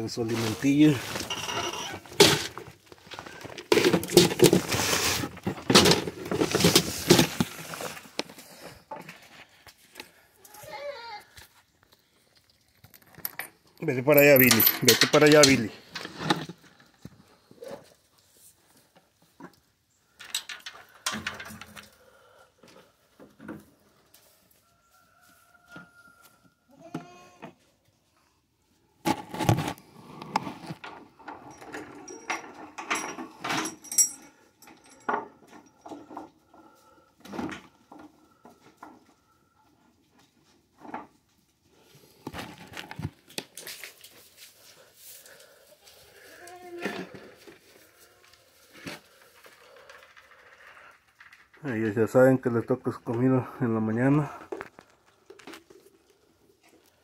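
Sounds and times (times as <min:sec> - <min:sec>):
rustling feed: 0:00.2 - 0:10.3, 0:41.7 - 0:51.6
knocks and clatter of gear: 0:30.8 - 0:36.3.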